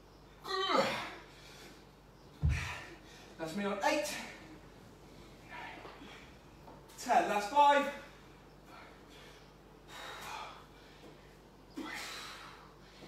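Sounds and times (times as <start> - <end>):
person breathing heavily: 8.2 - 13.0.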